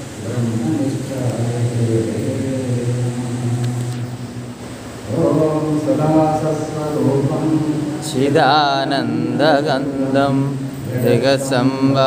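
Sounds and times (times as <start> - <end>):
man chanting low held note: 0.0 - 12.0.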